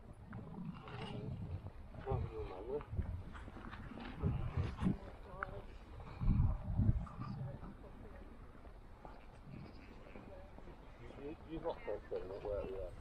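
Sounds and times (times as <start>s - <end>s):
wind buffeting microphone: 0.0s - 11.8s
faint voices talking: 0.2s - 13.0s.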